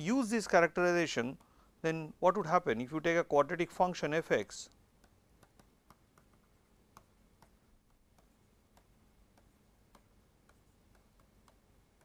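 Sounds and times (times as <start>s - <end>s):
stylus tapping on tablet screen: 4.7s - 12.0s.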